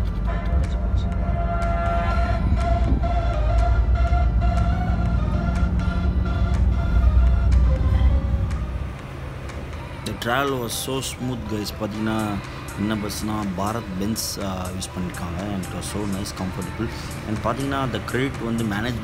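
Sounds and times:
bus rumble from inside: 0.0 - 19.0
music playing: 0.0 - 19.0.

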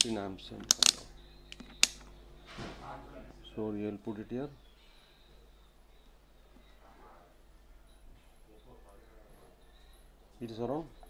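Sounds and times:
rotary switch clicking: 0.0 - 2.1.

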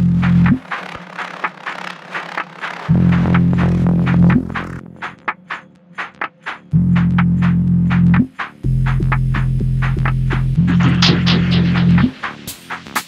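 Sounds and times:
deep synth bass: 0.0 - 5.3, 6.7 - 12.2
hi-hat ticks: 0.2 - 13.0.

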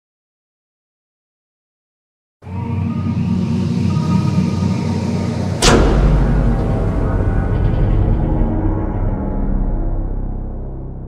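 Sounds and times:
low rumbling drone: 2.4 - 11.0.

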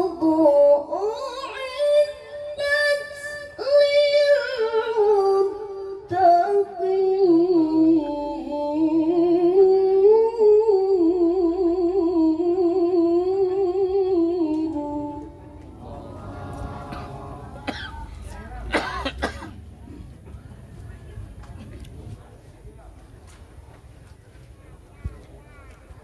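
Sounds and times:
woman reciting melodically: 0.0 - 19.3
background noise: 0.0 - 26.0.

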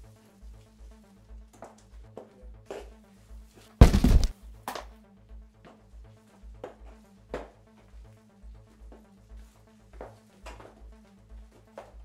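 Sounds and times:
body falling onto concrete floor: 3.8 - 4.4.

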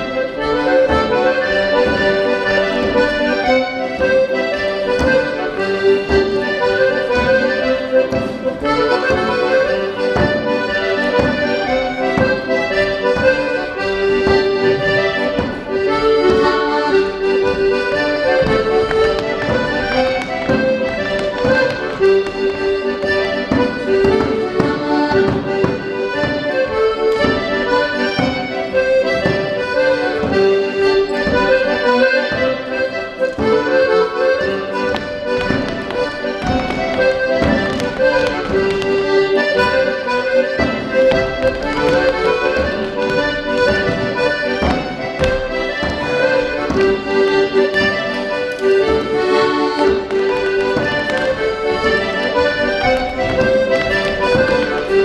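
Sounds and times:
accordion playing dance tune: 0.0 - 55.0.

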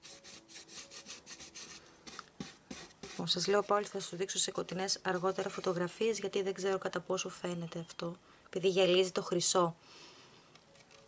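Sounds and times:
paintbrush scrubbing: 0.0 - 3.8.

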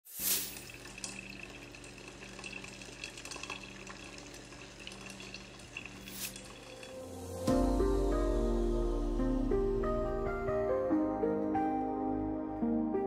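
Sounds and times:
coffee dripping into carafe: 0.5 - 7.2.

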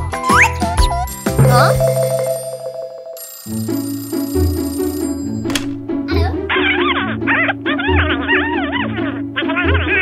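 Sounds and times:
background music: 0.0 - 10.0
toy telephone ringing: 1.0 - 5.6.

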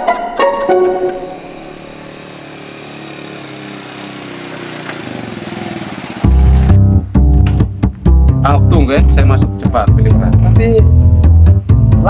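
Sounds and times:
motorcycle engine running: 1.1 - 12.0
music with heavy bass and guitar: 6.2 - 12.0.

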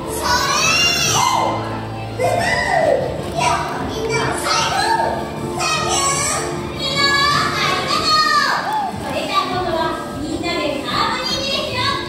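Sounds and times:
background music: 0.0 - 12.0
children chattering and calling out: 0.0 - 12.0.

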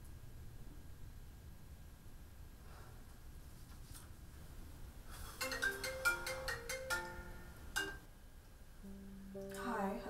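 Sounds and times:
marimba phone ringtone: 5.4 - 8.0.

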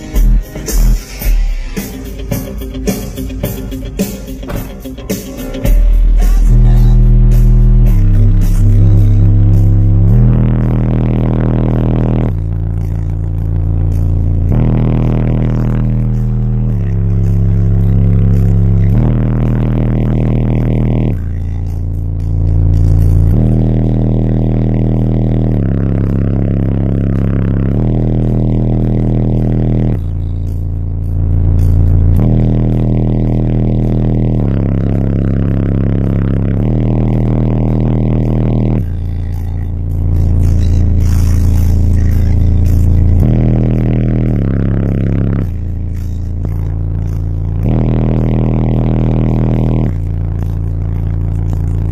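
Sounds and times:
loud bass-heavy car music: 0.0 - 51.9.

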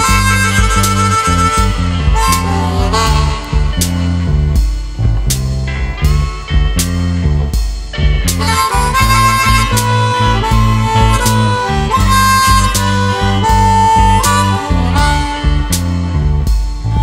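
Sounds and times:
blues band backing: 0.0 - 17.0
harmonica solo: 0.0 - 17.0.

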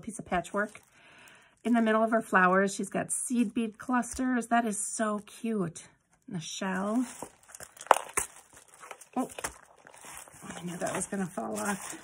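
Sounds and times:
paper pages rustling: 6.7 - 12.0.

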